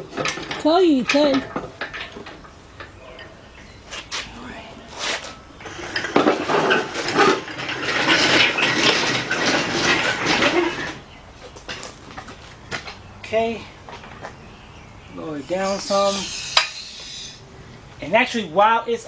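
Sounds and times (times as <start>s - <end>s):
engine hoist chain clanking: 0.0s - 3.7s, 5.6s - 12.3s.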